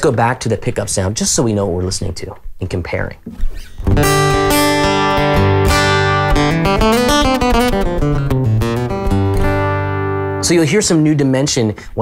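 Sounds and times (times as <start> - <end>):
acoustic guitar chords: 3.4 - 11.3.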